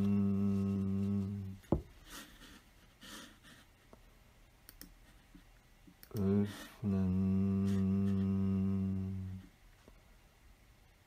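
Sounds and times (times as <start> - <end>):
low voice chanting a steady tone: 0.0 - 1.7, 6.0 - 9.6.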